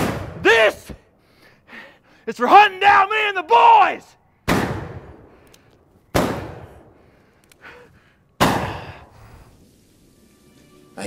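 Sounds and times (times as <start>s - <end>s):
gunshots: 0.0s - 0.4s, 4.4s - 5.4s, 6.1s - 7.0s, 8.4s - 9.0s.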